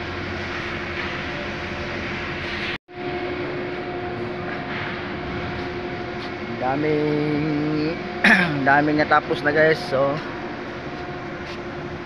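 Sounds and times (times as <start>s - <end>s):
constant machinery hum: 0.0s - 12.0s
factory machinery rumble and hiss: 0.0s - 12.0s.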